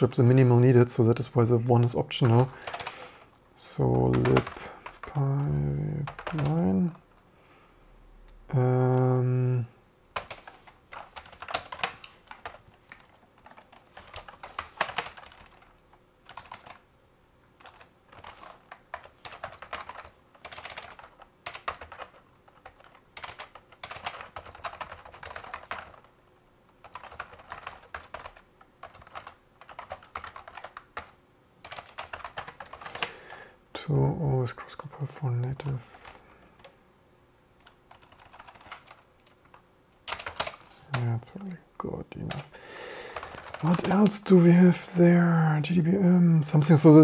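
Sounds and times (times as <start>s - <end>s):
computer keyboard typing: 1.2s - 7.0s, 10.1s - 16.8s, 17.6s - 26.1s, 26.8s - 33.3s, 34.8s - 36.7s, 37.6s - 41.4s, 42.2s - 42.5s, 43.1s - 44.4s.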